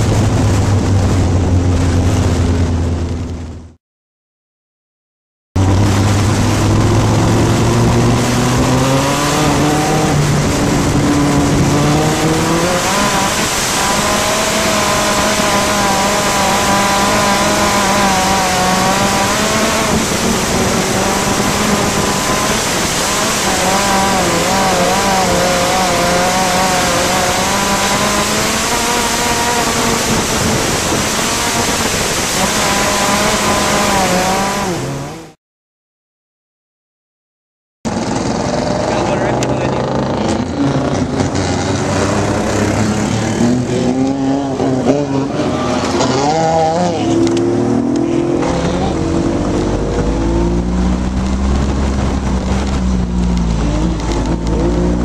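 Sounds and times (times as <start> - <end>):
heavy wind noise: 0.0 - 3.8, 5.6 - 35.0, 37.9 - 55.0
racing engine revving: 5.6 - 35.4, 37.9 - 55.0.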